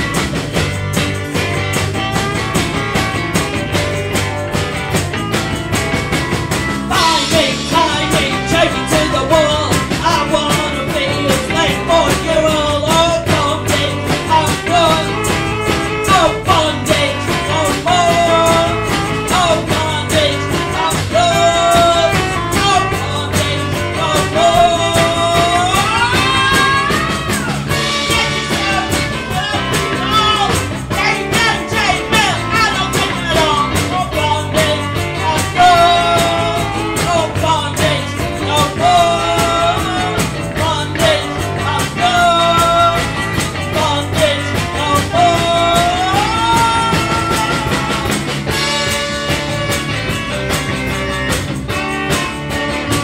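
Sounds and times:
bass: 0.0 - 53.0
drums: 0.0 - 53.0
electric guitar: 0.0 - 53.0
tambourine: 0.0 - 53.0.

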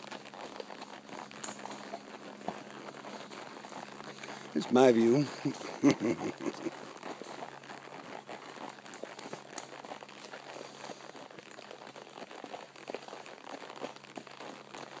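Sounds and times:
horse hooves on dirt: 0.0 - 15.0.

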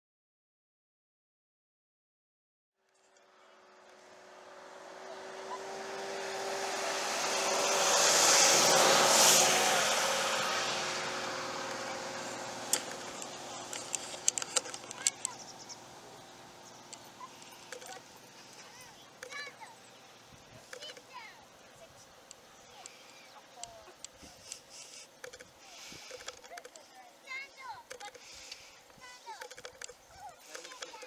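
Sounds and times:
vehicle road noise passing: 2.9 - 31.0
sharp clicks and taps: 12.7 - 15.4, 22.3 - 25.5, 27.8 - 31.0.

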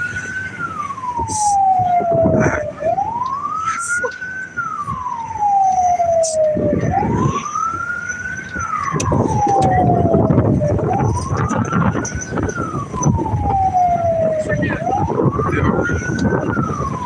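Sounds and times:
siren wailing: 0.0 - 17.0
vehicle engine rumbling: 0.0 - 17.0
wind noise: 0.0 - 17.0.

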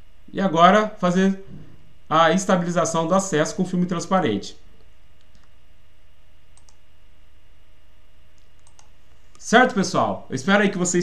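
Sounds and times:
low electrical hum: 0.0 - 11.0
faint computer mouse clicks: 5.2 - 5.5, 6.6 - 6.8, 8.3 - 9.4.

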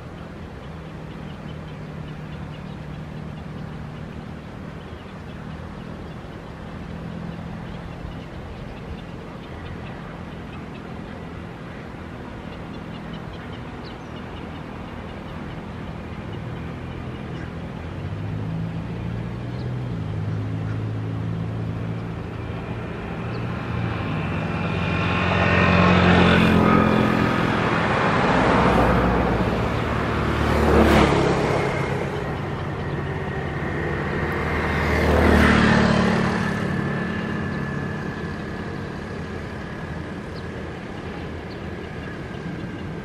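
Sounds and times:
vehicles passing by: 0.0 - 43.0.

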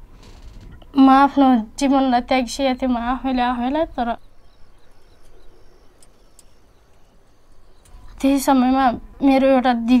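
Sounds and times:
faint background hiss: 0.0 - 10.0
woman speaking: 0.9 - 4.2, 8.1 - 10.0.

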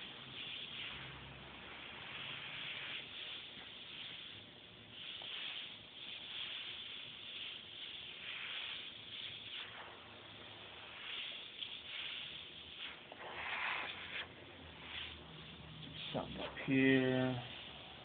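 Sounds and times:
airbrush spraying hiss: 0.0 - 18.0.

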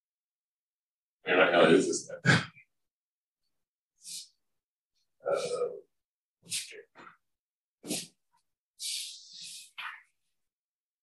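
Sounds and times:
man's breathy vocal sound: 5.2 - 6.7, 8.8 - 9.8.

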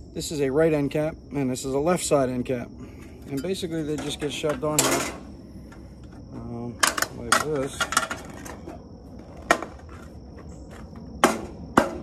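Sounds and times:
insect trill: 0.0 - 12.0.

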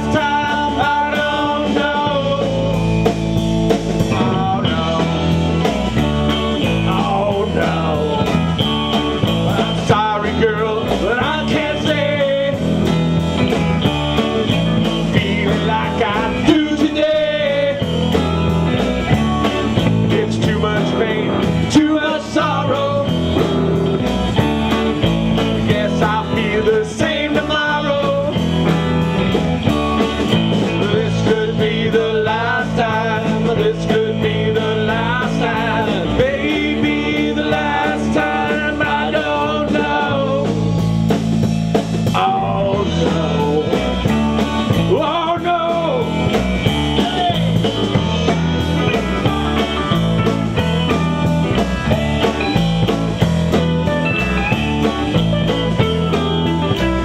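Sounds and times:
blues-rock band playing: 0.0 - 57.0
drum kit beat: 0.0 - 57.0
electric guitars: 0.0 - 57.0.

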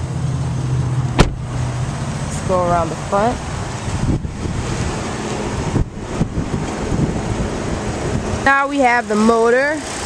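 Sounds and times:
wind buffeting microphone: 2.5 - 8.5.

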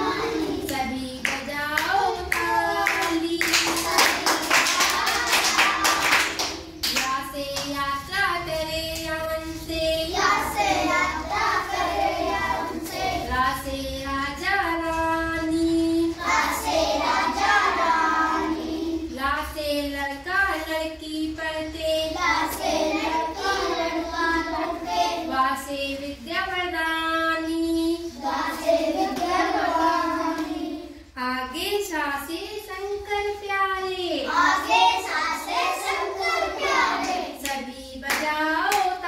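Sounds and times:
children singing: 0.0 - 6.6, 9.4 - 13.8, 15.4 - 19.2, 21.9 - 25.7, 27.8 - 31.1, 34.3 - 39.0
hand-clapping: 0.7 - 7.8, 36.9 - 39.0.

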